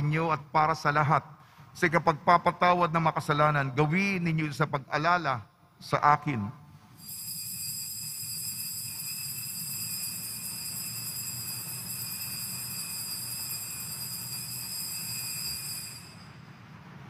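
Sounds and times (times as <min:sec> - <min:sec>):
altar bells ringing: 0:07.0 - 0:16.7.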